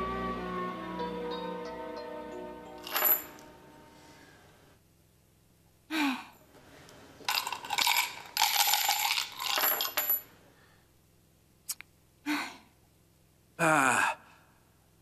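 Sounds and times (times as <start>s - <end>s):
coins rattling in shell: 2.8s - 3.4s, 7.3s - 10.2s
coins clinking on table: 2.8s - 3.5s, 7.3s - 10.3s
person sighing: 13.6s - 14.5s.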